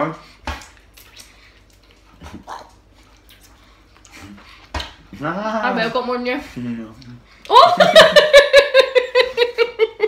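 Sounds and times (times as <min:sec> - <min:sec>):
chewing and sucking: 0:00.6 - 0:04.7.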